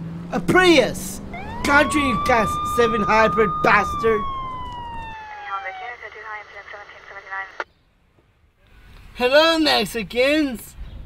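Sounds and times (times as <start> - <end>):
voice over radio speaker: 1.6 - 4.2, 5.2 - 7.6
radio click: 4.7 - 7.7.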